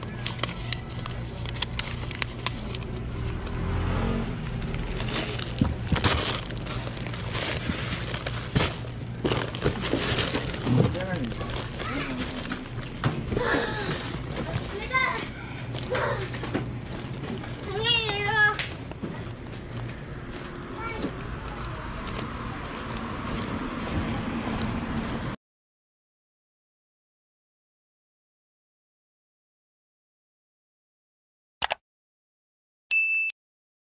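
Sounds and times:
snack bag crinkling: 0.0s - 3.4s, 4.5s - 16.2s
groceries clicking and rustling: 0.0s - 3.6s, 4.4s - 24.7s
items knocking into cardboard box: 5.0s - 14.7s.

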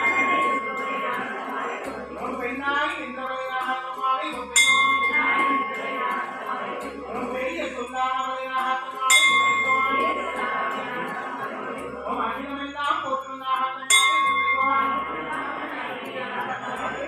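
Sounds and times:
brass bell ringing: 0.0s - 1.5s, 4.5s - 6.1s, 9.0s - 10.8s, 13.9s - 15.6s
people chanting: 0.0s - 17.0s.

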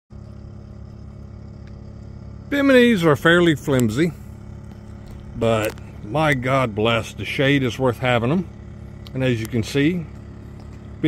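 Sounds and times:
low mechanical hum: 0.1s - 11.0s.

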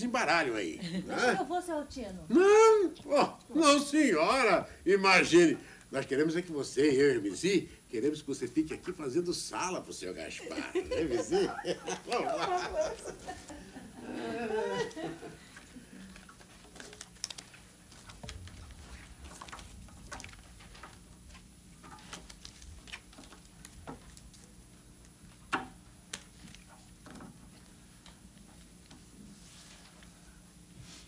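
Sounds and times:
playing cards shuffling: 16.2s - 21.0s.

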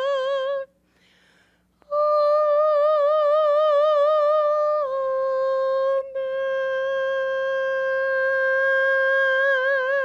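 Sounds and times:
woman singing unaccompanied: 0.0s - 0.8s, 1.8s - 10.0s.

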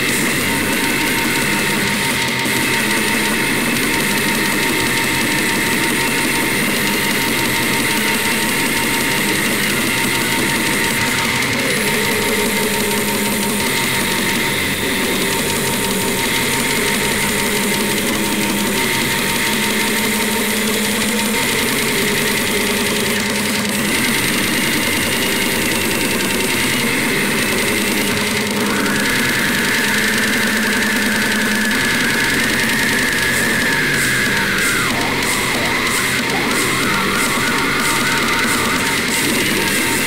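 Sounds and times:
death metal music: 0.0s - 40.0s.

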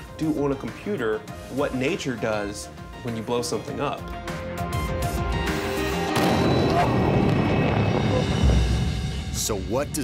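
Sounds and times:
background music: 0.0s - 10.0s
rumbling explosion blast: 6.2s - 9.4s.

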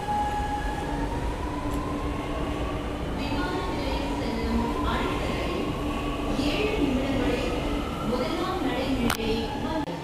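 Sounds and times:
metro train rumbling: 0.0s - 10.0s.

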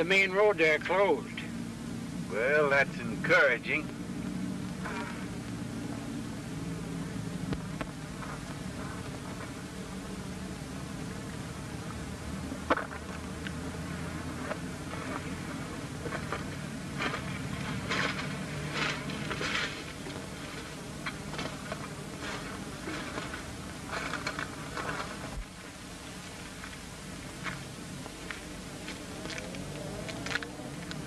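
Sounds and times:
old film soundtrack hum and hiss: 0.0s - 31.0s.

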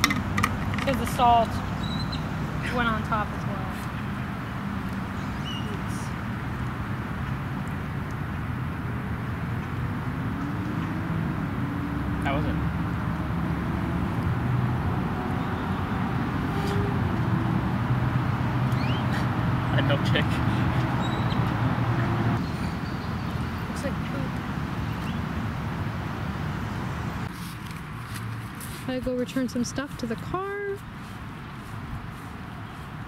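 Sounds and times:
road traffic hum: 0.0s - 33.0s.

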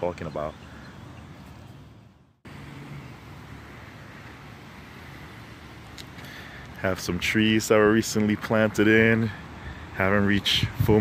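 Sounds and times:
outdoor ambient hiss: 0.0s - 11.0s.

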